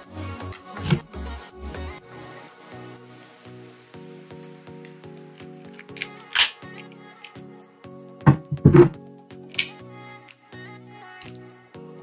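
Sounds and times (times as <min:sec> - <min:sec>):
background music: 0:00.0 - 0:12.0
crab cracker cracking shell: 0:05.8 - 0:06.8.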